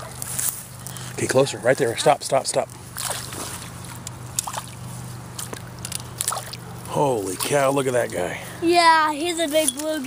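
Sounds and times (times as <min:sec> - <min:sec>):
water sloshing and splashing: 0:00.1 - 0:08.3.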